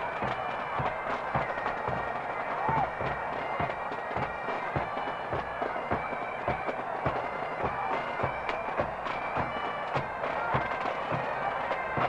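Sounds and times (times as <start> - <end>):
bagpipes: 0.0 - 12.0.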